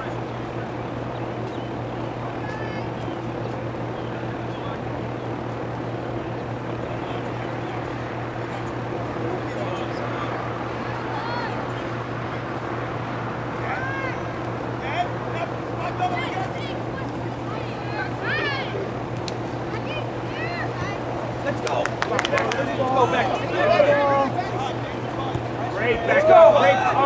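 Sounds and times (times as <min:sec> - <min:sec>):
steady low hum: 0:00.0 - 0:27.0
distant shouts of players: 0:06.8 - 0:27.0.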